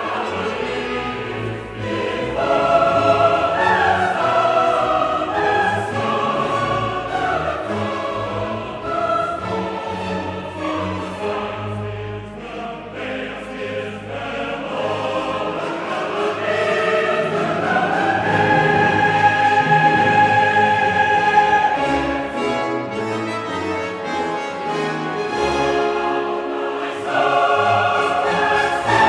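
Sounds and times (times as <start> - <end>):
mixed chorus singing: 0.0 - 22.8, 25.2 - 29.0
symphony orchestra playing: 0.0 - 29.0.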